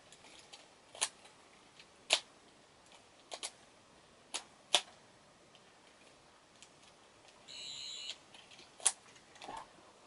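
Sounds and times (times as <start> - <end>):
faint room hiss: 0.0 - 10.0
high-pitched electronic beep: 7.5 - 8.1.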